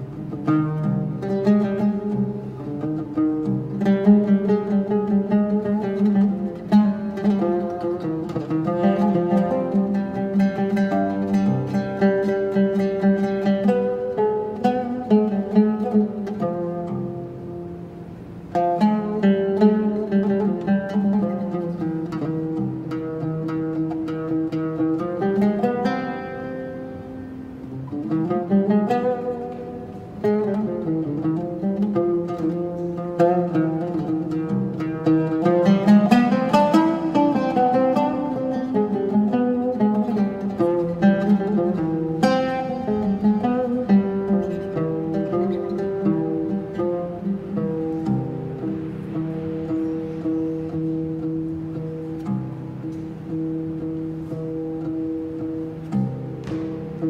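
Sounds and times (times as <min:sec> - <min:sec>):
oud melody: 0:00.0 - 0:57.0.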